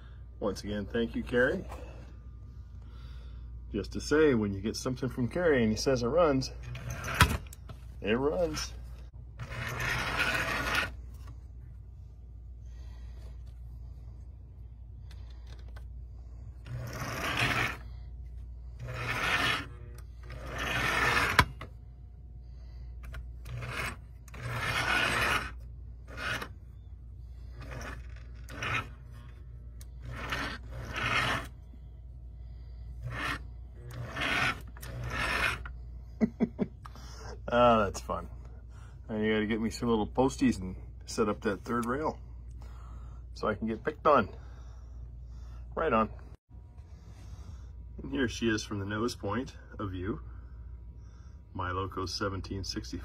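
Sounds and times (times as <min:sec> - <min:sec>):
steady low hum: 0:00.0 - 0:53.0
electric motor and gears whirring: 0:04.8 - 0:11.8, 0:12.6 - 0:37.4.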